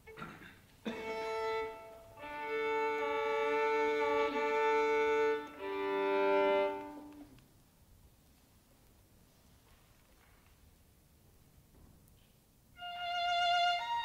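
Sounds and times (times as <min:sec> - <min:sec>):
solo violin bowed: 0:01.0 - 0:07.4, 0:12.8 - 0:14.0.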